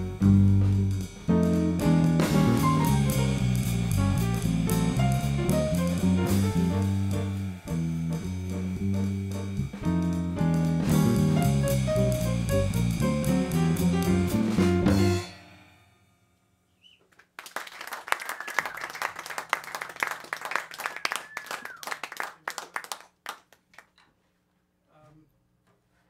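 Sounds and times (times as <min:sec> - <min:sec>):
jazz quartet final chord: 0:00.0 - 0:15.6
audience applauding: 0:17.2 - 0:24.0.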